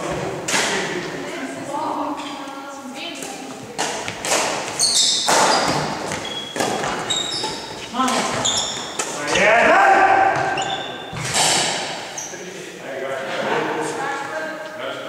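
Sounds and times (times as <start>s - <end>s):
players' voices: 0.0s - 15.0s
sneakers squeaking on wooden floor: 3.1s - 12.4s
racquets striking shuttlecock: 3.2s - 9.4s.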